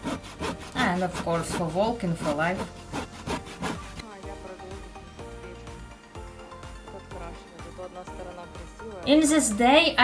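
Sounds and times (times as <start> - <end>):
hand saw cutting wood: 0.0 - 4.0
background music: 0.0 - 10.0.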